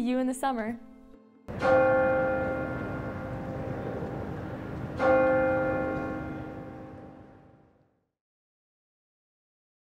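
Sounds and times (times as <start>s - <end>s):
bell-like chime: 1.5s - 7.6s.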